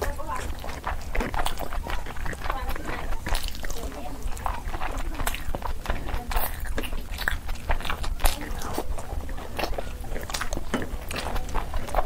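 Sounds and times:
close chewing mouth sounds: 0:00.0 - 0:12.0.

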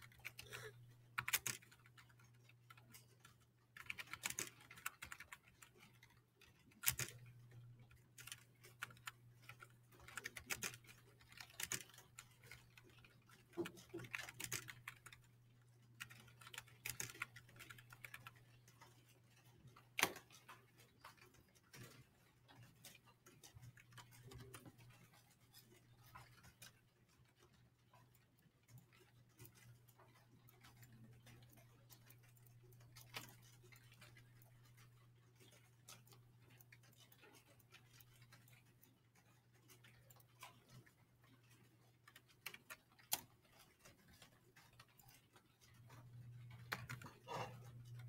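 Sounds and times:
faint clicks and taps: 0:00.0 - 0:48.0.

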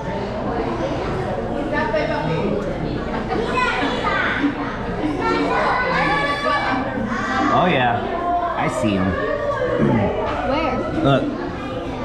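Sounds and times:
chatter of voices: 0:00.0 - 0:12.0
children's voices: 0:00.0 - 0:12.0.

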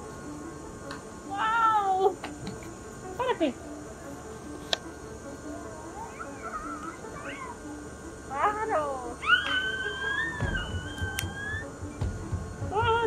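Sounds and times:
faint background music: 0:00.0 - 0:13.0
high-pitched voice crying out: 0:09.2 - 0:11.7
long held squeal: 0:09.2 - 0:12.0.

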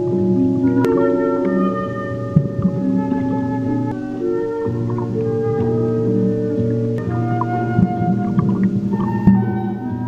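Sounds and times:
background music of long held tones: 0:00.0 - 0:10.0.

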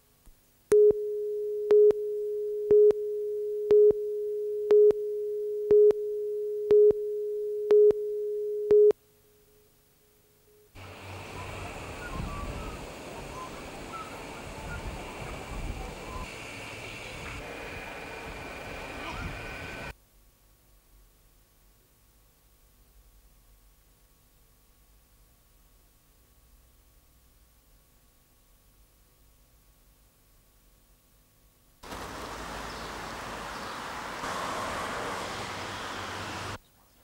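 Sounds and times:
background hiss: 0:00.0 - 0:37.0
electronic beeps with clicks: 0:00.7 - 0:09.0.

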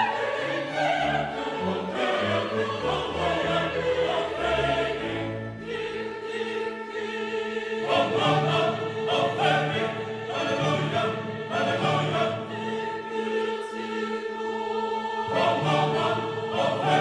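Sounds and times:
mixed choir singing: 0:00.0 - 0:17.0
orchestral accompaniment: 0:00.0 - 0:17.0.

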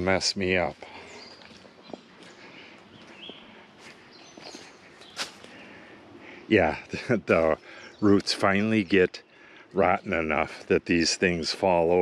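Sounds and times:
short bird calls: 0:00.8 - 0:06.8
footsteps through leaf litter: 0:03.2 - 0:05.6.

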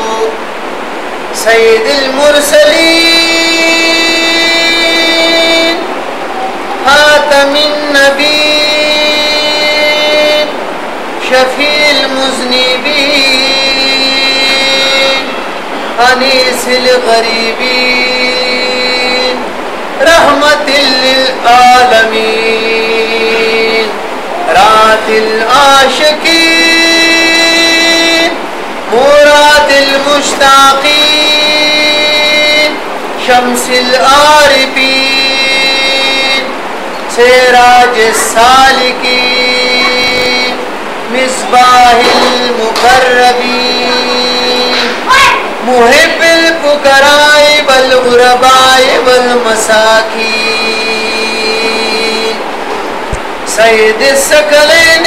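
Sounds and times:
man chanting: 0:00.0 - 0:00.5, 0:01.3 - 0:10.6, 0:11.2 - 0:52.4, 0:53.4 - 0:55.0
steady hiss: 0:00.0 - 0:55.0.

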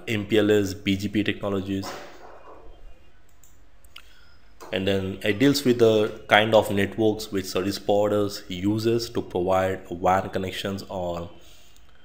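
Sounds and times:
low steady room hiss: 0:00.0 - 0:12.0
computer mouse clicks: 0:03.3 - 0:04.1.

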